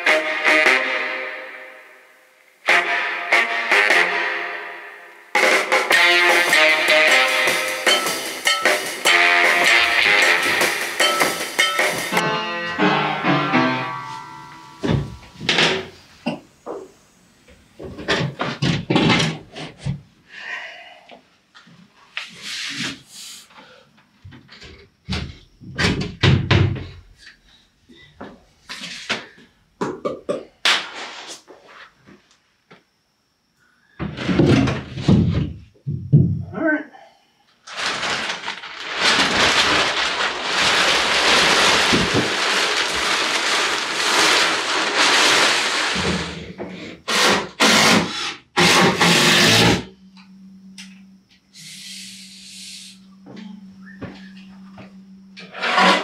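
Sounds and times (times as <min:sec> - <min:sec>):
background music: 0:00.0 - 0:14.8
wooden panels knocking and thudding: 0:34.0 - 0:36.5.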